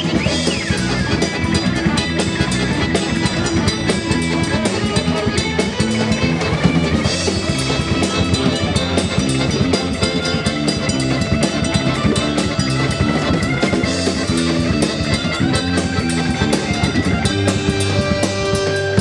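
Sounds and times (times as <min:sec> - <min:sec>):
button accordion: 0:00.0 - 0:19.0
drum kit steady beat: 0:00.0 - 0:19.0
guitar: 0:00.0 - 0:19.0.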